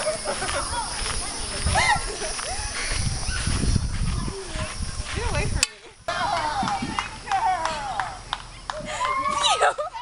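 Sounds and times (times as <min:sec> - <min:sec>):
wind buffeting microphone: 0:00.0 - 0:07.3.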